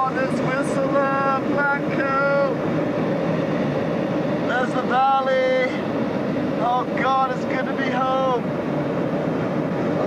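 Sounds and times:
vehicle travel rumble: 0:00.0 - 0:10.0.

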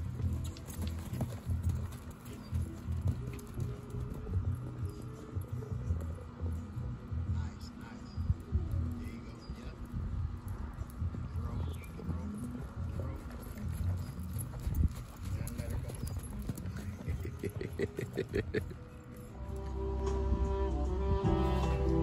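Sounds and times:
horse hoofbeats on sand: 0:00.0 - 0:06.1, 0:10.7 - 0:18.6.

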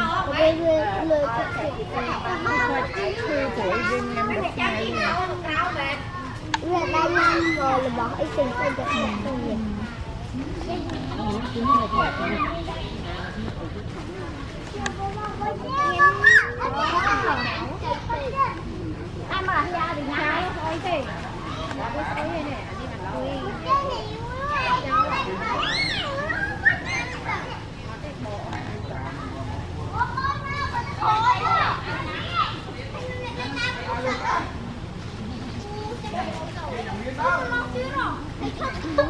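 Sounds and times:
children talking and calling out: 0:00.0 - 0:39.0.

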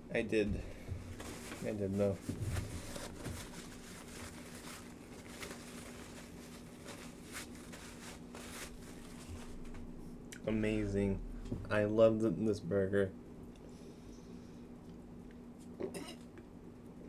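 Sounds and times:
faint steady hum: 0:00.0 - 0:17.0
paper towel rustling: 0:00.8 - 0:09.9.

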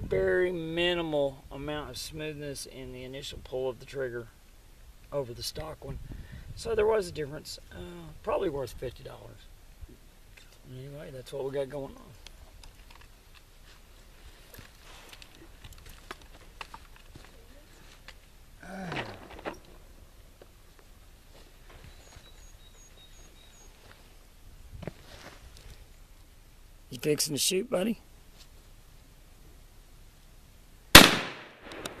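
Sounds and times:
rifle shot: 0:30.9 - 0:32.0
faint clicks: 0:31.6 - 0:32.0.

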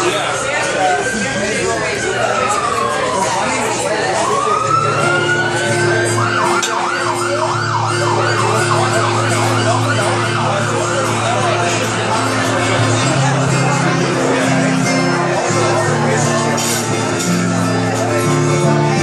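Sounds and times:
emergency siren wailing: 0:00.0 - 0:19.0
room chatter: 0:00.0 - 0:19.0.

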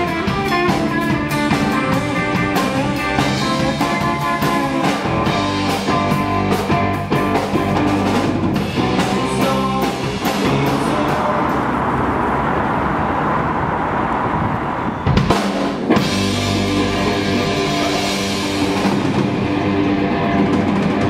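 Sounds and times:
drum kit: 0:00.0 - 0:11.7, 0:15.0 - 0:21.0
electric guitar: 0:00.0 - 0:12.4, 0:15.0 - 0:21.0
bass guitar: 0:00.0 - 0:13.5, 0:14.3 - 0:21.0.

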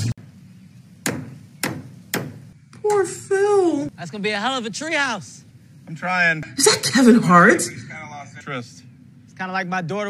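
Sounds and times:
hammer striking wood: 0:01.0 - 0:02.5.

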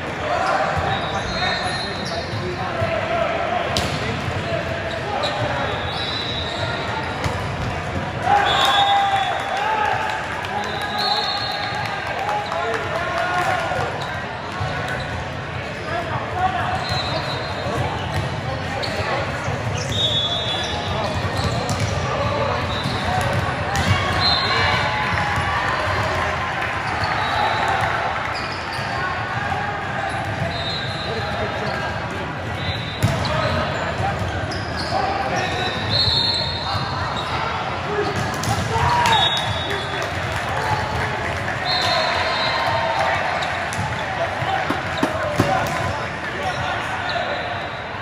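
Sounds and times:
volleyballs struck and bouncing: 0:43.7 - 0:46.4.

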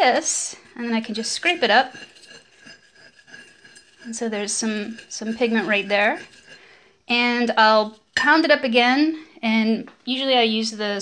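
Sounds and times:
spatula scraping glass dish: 0:00.0 - 0:08.3.

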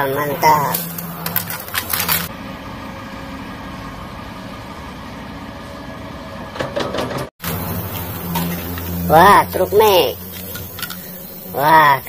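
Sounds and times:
steady mechanical hum: 0:00.0 - 0:12.0.

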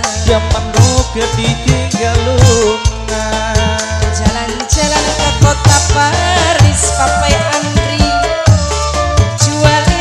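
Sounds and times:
electronic organ melody: 0:00.0 - 0:10.0
hand drums beat: 0:00.0 - 0:10.0.

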